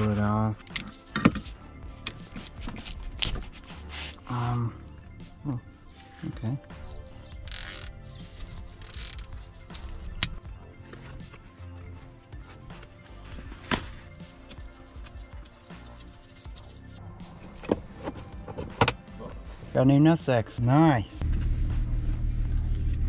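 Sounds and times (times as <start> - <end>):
quiet background music: 0.0 - 23.0.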